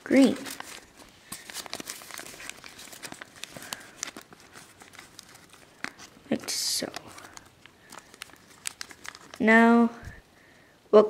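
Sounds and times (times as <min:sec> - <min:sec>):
paper rustling and crinkling: 0:00.0 - 0:10.2
crisp paper clicks: 0:00.4 - 0:09.4.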